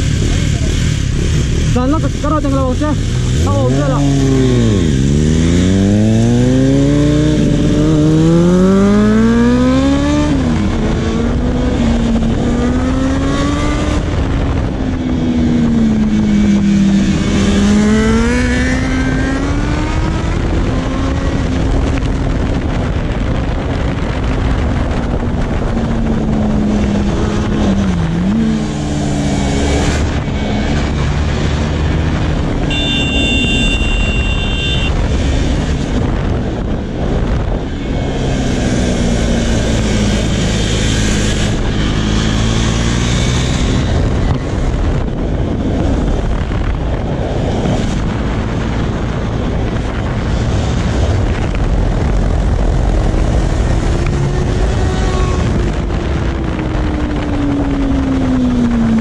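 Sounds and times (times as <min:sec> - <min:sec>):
motorcycle engine revving: 0:00.0 - 0:59.0
rushing wind: 0:00.0 - 0:59.0.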